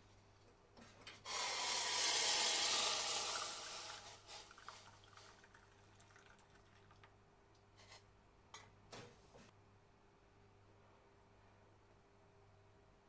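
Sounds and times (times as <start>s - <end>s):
water poured into a ceramic mug: 2.0s - 7.1s.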